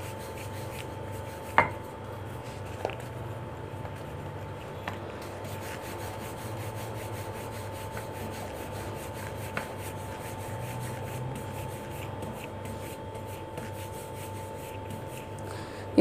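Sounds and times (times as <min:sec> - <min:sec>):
rolling pin rubbing on dough: 0:00.0 - 0:15.4.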